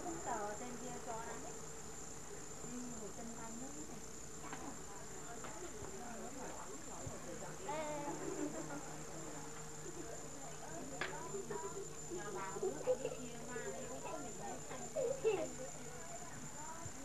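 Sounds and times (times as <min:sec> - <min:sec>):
people talking: 0:00.0 - 0:01.6, 0:02.6 - 0:17.0
thin high-pitched whine: 0:00.0 - 0:17.0.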